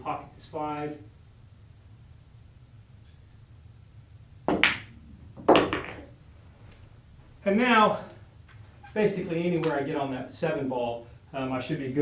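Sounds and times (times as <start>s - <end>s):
cue ball clacking into ball: 4.5s - 6.2s.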